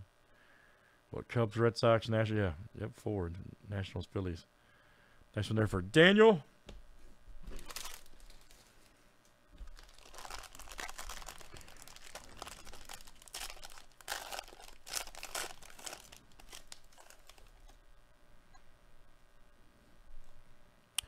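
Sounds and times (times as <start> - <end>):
foil pack tearing and crinkling: 7.5 - 8.8, 9.6 - 17.8.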